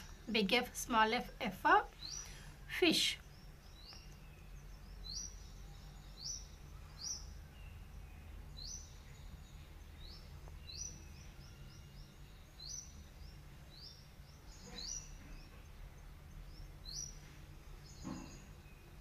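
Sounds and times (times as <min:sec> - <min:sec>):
low steady hum: 0:00.0 - 0:19.0
small bird chirping: 0:00.0 - 0:19.0.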